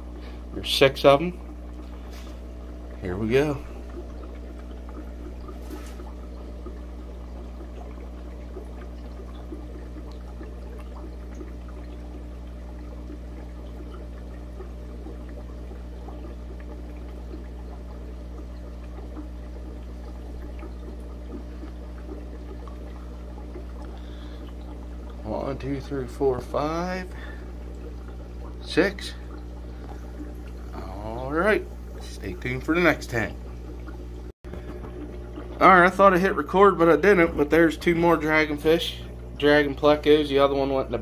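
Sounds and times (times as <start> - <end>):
aquarium filters bubbling: 0.0 - 41.0
constant low hum: 0.0 - 41.0.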